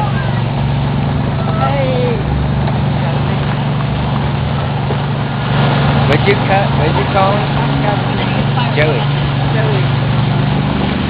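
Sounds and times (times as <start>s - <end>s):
golf cart humming: 0.0s - 11.0s
wheels rolling on gravel: 0.0s - 11.0s.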